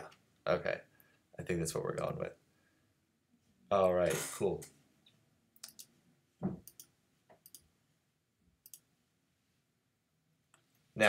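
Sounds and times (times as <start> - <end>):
soft thump: 6.4 - 6.6.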